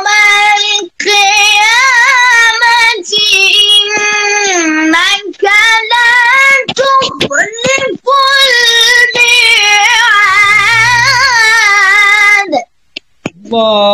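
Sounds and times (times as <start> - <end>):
person reciting melodically: 0.0 - 12.7.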